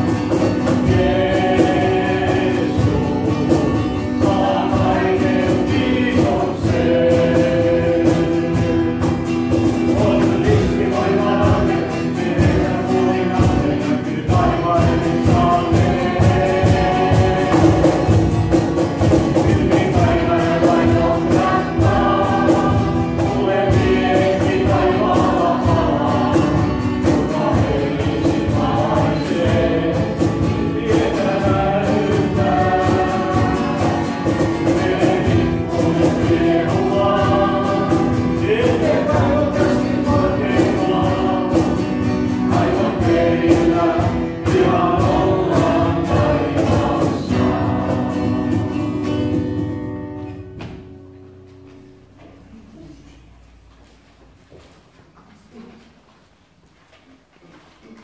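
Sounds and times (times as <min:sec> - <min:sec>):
choir singing gospel song: 0:00.0 - 0:50.8.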